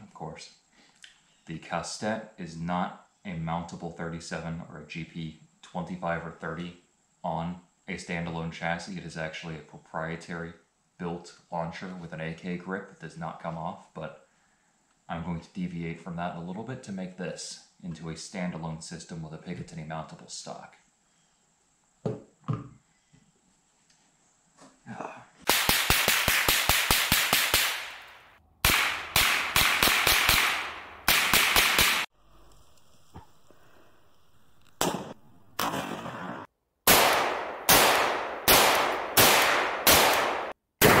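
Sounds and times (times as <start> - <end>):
rifle gunfire: 25.5 - 32.1, 36.9 - 41.0.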